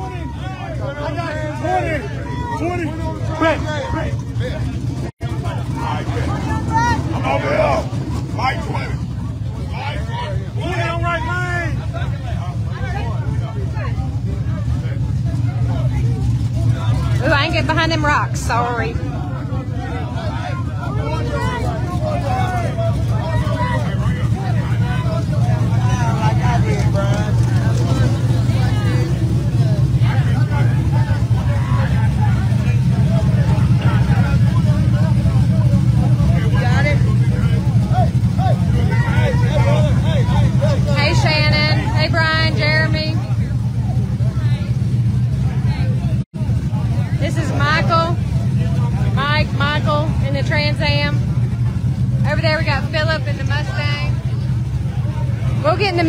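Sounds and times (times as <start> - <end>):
car engine idling: 0.0 - 56.0
crowd chatter: 0.0 - 56.0.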